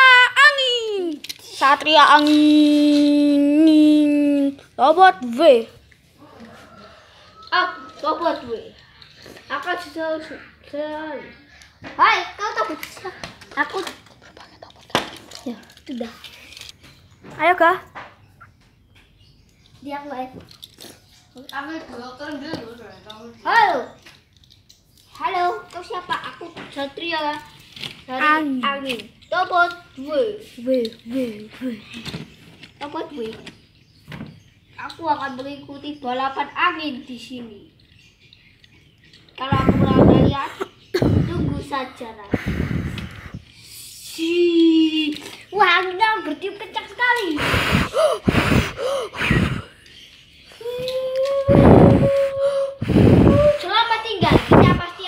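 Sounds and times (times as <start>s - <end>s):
child's voice: 0.0s - 6.6s, 7.4s - 16.4s, 19.8s - 20.5s, 21.4s - 24.1s, 25.1s - 32.2s, 32.8s - 33.6s, 34.8s - 37.7s, 39.4s - 49.8s, 50.5s - 55.0s
boy humming steady note: 42.3s - 44.0s, 47.4s - 49.8s, 50.6s - 53.7s
boy making mouth whooshes: 42.3s - 44.0s, 47.3s - 49.8s, 51.2s - 53.7s.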